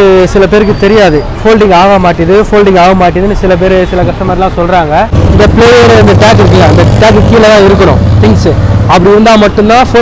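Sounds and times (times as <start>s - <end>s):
man talking: 0.0s - 10.0s
street traffic rumble: 0.0s - 10.0s.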